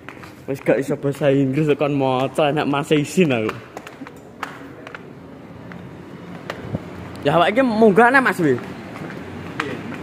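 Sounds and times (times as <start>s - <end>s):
outdoor hiss and rumble: 0.0s - 10.0s.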